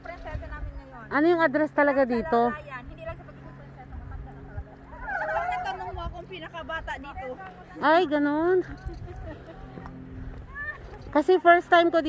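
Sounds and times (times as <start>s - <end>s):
high-pitched voices talking: 4.8s - 6.5s.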